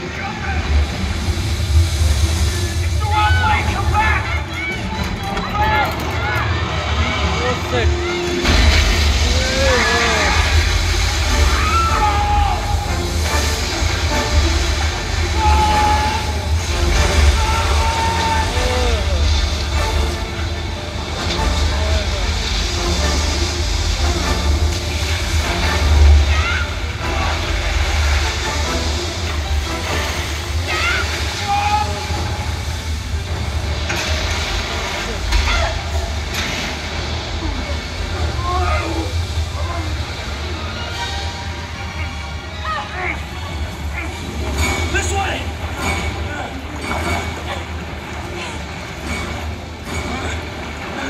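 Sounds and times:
film music: 0:00.0 - 0:51.0
low rumble: 0:00.0 - 0:51.0
rushing water: 0:00.0 - 0:51.0.

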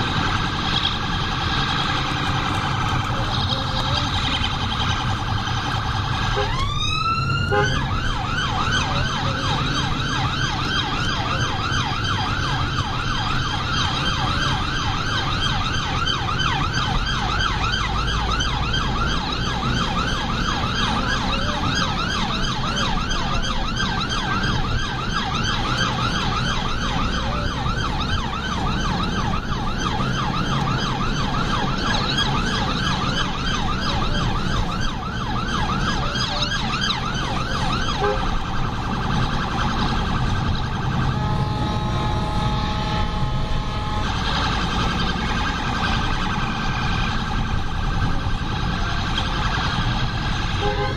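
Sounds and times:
engine and road rumble: 0:00.0 - 0:50.9
siren yelp: 0:00.0 - 0:50.9.

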